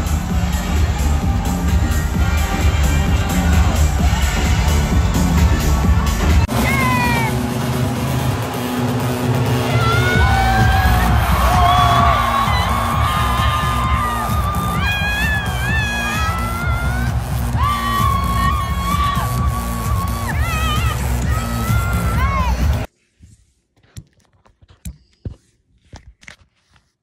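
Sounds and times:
loud live dance music: 0.0 - 22.9.

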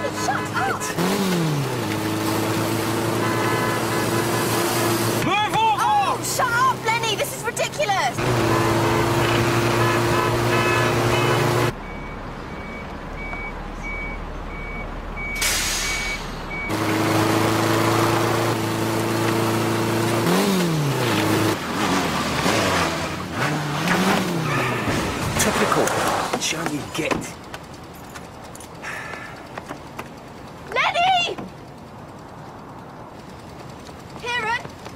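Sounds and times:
engine drone revving: 0.0 - 5.3, 8.1 - 11.8, 16.5 - 26.3
faint repeated beep: 10.6 - 16.7.

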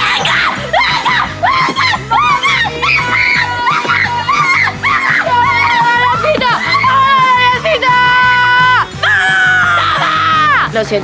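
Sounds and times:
girls shouting high cries: 0.0 - 10.7
background music: 0.0 - 11.0.

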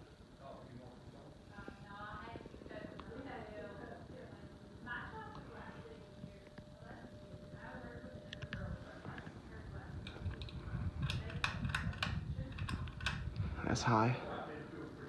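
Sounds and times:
background conversation: 0.0 - 15.0
low rumble: 4.0 - 13.8
ceiling fan pull chain clicking: 10.0 - 13.5.

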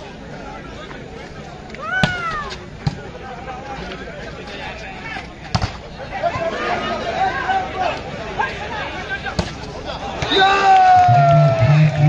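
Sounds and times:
crowd chatter: 0.0 - 12.0
high shout: 1.8 - 2.6, 10.1 - 12.0
volleyball slaps: 9.3 - 11.1.

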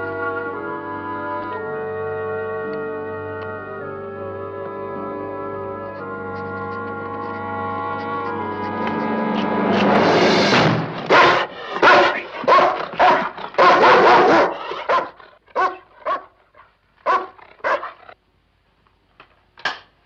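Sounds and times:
dog barking: 11.1 - 18.2.

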